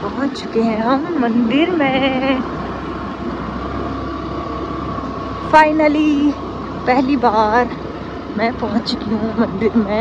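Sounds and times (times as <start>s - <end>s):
road and wind noise: 0.0s - 10.0s
vehicle engine drone: 0.0s - 10.0s.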